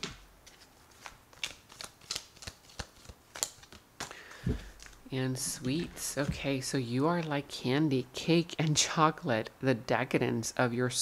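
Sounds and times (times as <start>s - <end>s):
cards being shuffled by hand: 0.0s - 7.4s.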